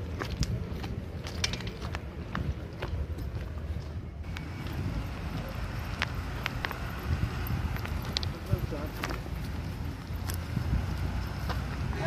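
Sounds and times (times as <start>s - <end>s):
footsteps on gravel: 0.0s - 12.0s
wind rumble on microphone: 0.0s - 12.0s.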